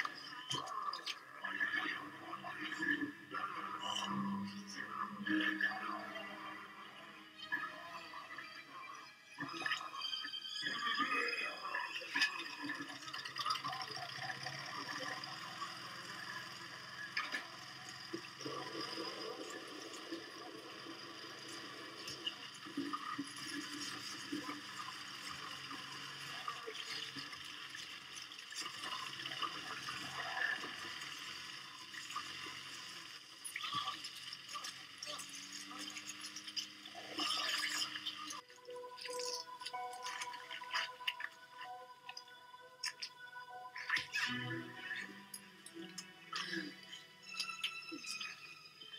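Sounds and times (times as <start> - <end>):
voices: 0.0 - 8.1
music: 0.0 - 48.9.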